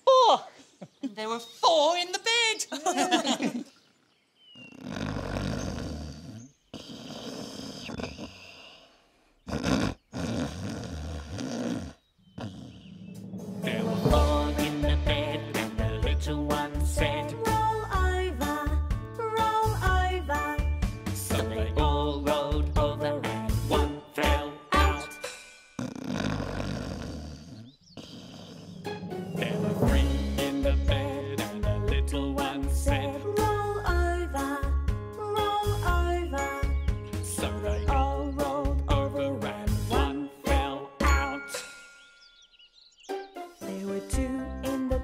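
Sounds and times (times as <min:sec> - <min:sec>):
people pretend snoring: 0:04.6 - 0:13.0, 0:25.8 - 0:28.9.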